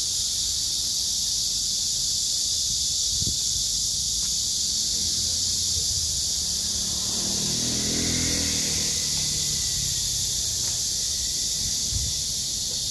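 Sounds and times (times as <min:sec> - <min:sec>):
cicadas buzzing: 0:00.0 - 0:12.9
vehicle engine passing: 0:04.7 - 0:12.8.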